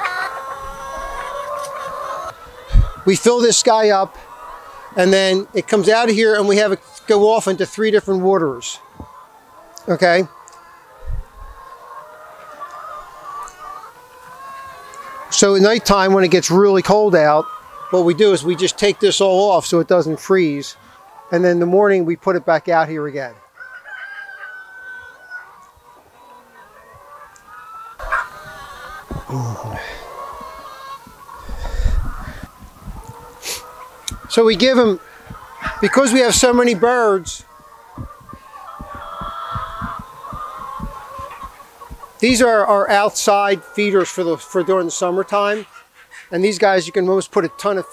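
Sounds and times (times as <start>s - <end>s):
hens clucking: 0.0s - 47.9s
soft footsteps on wood chips: 28.0s - 42.5s
short low thump: 38.0s - 41.0s.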